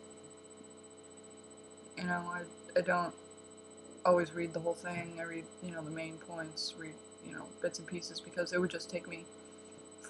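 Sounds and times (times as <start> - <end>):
faint electrical hum: 0.0 - 10.0
thin high-pitched whine: 0.0 - 10.0.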